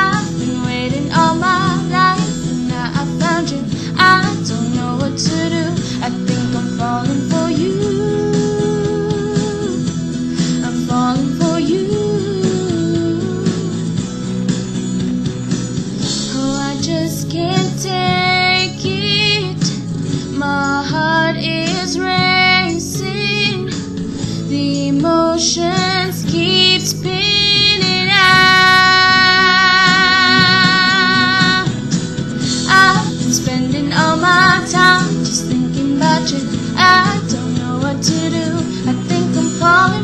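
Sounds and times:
woman singing with vibrato: 0:00.0 - 0:09.8, 0:10.5 - 0:13.8, 0:16.2 - 0:19.6, 0:20.4 - 0:23.7, 0:24.5 - 0:31.9, 0:32.6 - 0:40.0
pop song guitar accompaniment: 0:00.0 - 0:40.0.

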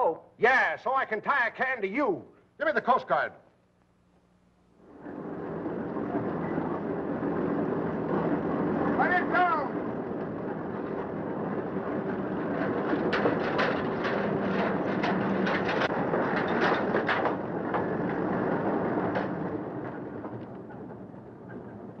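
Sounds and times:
boat engine hum: 0:04.8 - 0:22.0
knocks and clatters of gear: 0:12.0 - 0:22.0.

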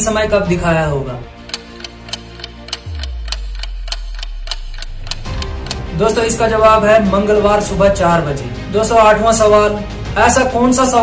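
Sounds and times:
clock ticking: 0:00.0 - 0:09.6
soft background music: 0:00.0 - 0:11.0
deep bass hit: 0:02.8 - 0:08.8.

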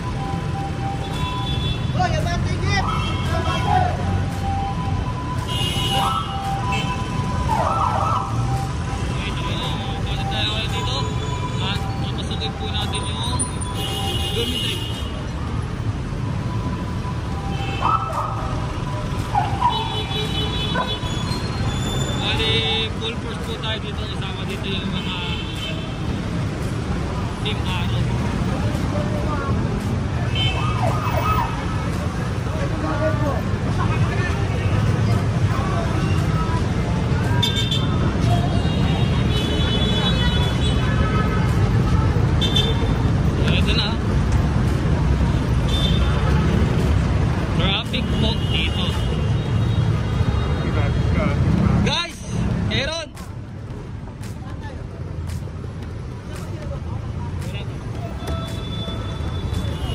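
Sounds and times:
traffic engines rumbling: 0:00.0 - 0:59.9
people talking nearby: 0:20.7 - 0:59.9.

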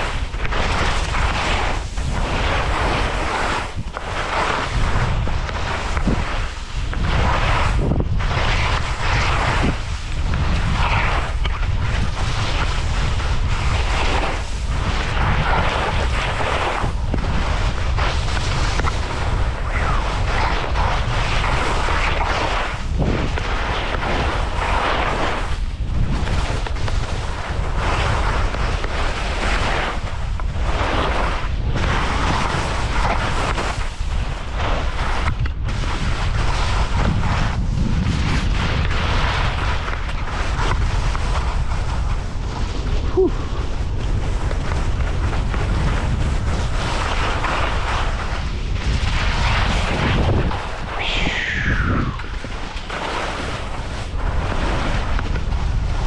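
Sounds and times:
skis scraping over snow: 0:00.0 - 0:56.0
wind buffeting microphone: 0:00.0 - 0:56.0.

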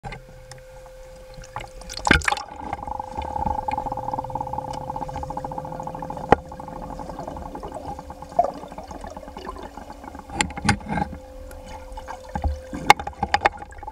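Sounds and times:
muffled underwater bubbling hum: 0:00.0 - 0:13.9.

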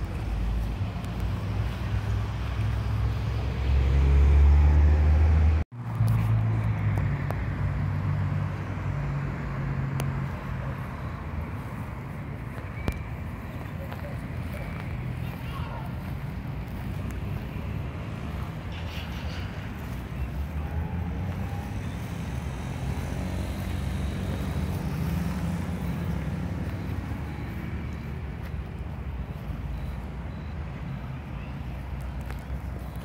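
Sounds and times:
road traffic rumble: 0:00.0 - 0:33.0.

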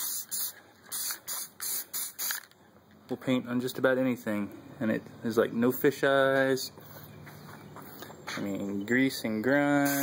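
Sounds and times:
spray paint can hissing in spurts: 0:00.0 - 0:02.5, 0:09.8 - 0:10.0.

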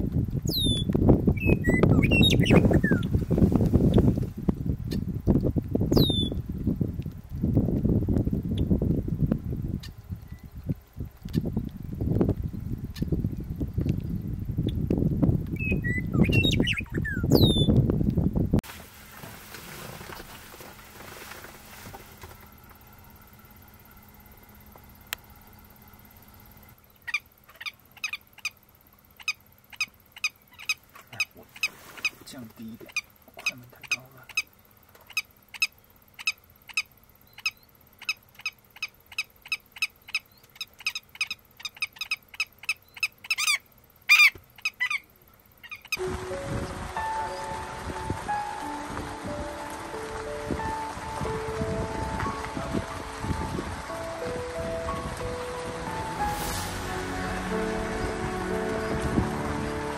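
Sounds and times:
wind buffeting microphone: 0:00.0 - 0:18.7, 0:46.0 - 0:59.9
bird calling sharply: 0:00.5 - 0:03.1, 0:05.9 - 0:06.4, 0:35.1 - 0:46.0.

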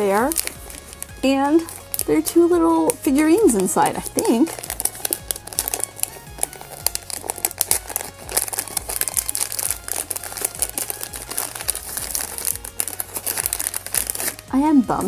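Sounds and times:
background music: 0:00.0 - 0:15.0
plastic bag crinkling: 0:00.0 - 0:15.0.

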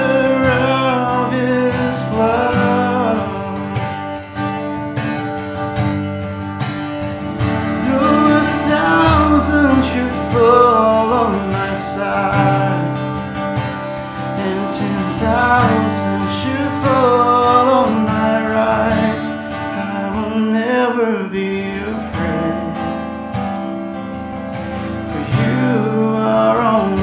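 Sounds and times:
man singing: 0:00.0 - 0:04.6, 0:07.4 - 0:23.5, 0:24.8 - 0:27.0
strummed acoustic guitar: 0:00.0 - 0:27.0.

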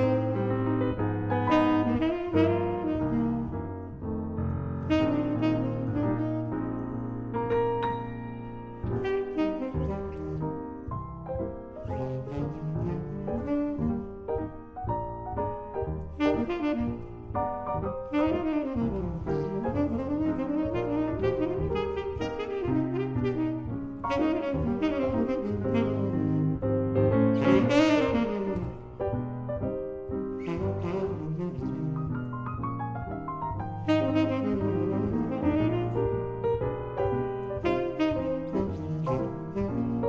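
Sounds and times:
tenor saxophone: 0:00.0 - 0:04.1, 0:04.8 - 0:07.6, 0:08.8 - 0:11.0, 0:11.8 - 0:29.2, 0:30.3 - 0:32.6, 0:33.7 - 0:40.0
jazz piano: 0:00.0 - 0:40.0.

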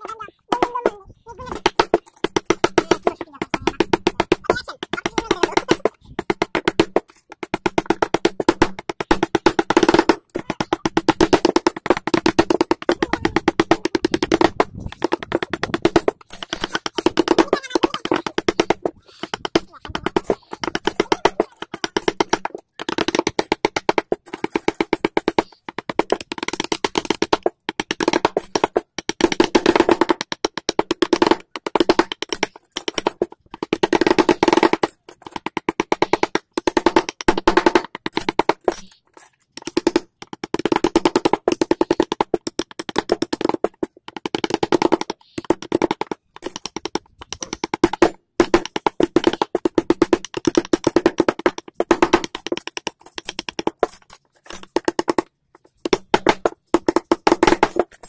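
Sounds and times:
chisel tapping into wood: 0:18.1 - 0:58.0.

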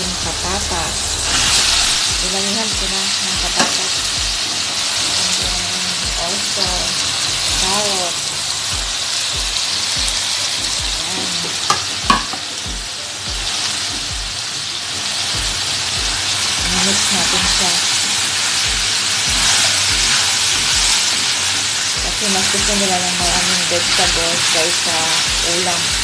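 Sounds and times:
vegetables sizzling in a wok: 0:00.0 - 0:26.0.

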